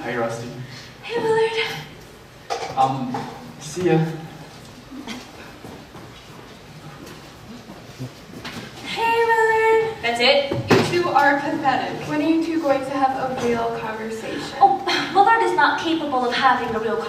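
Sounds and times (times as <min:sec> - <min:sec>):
faint stage noises: 0:00.0 - 0:17.0.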